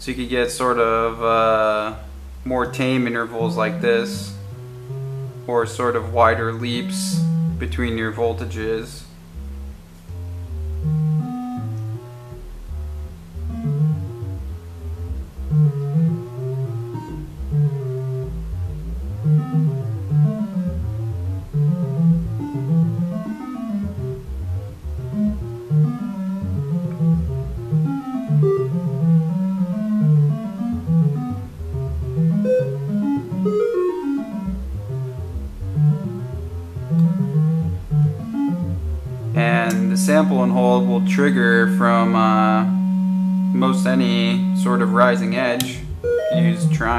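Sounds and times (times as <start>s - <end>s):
synthesizer plucked notes: 0.0s - 46.9s.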